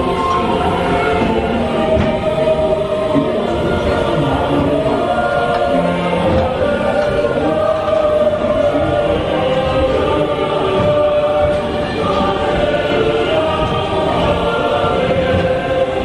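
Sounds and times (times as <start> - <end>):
choir singing held notes: 0.0 - 16.0.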